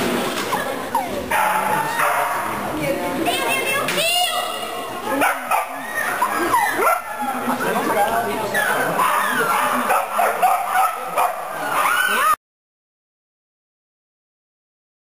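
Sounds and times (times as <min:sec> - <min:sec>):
people's voices: 0:00.0 - 0:12.4
dog yipping and barking: 0:08.6 - 0:12.4.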